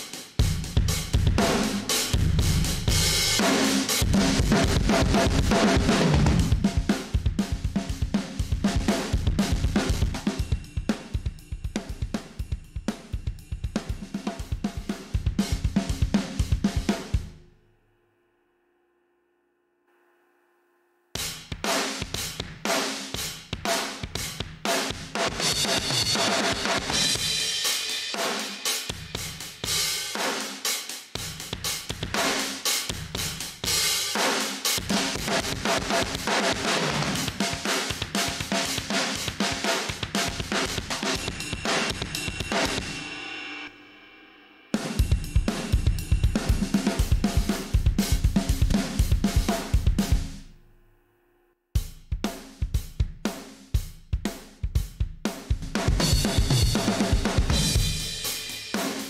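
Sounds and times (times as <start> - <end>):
distorted rock drum loop: 0.0 - 17.4, 21.2 - 43.7, 44.8 - 50.5, 51.8 - 59.0.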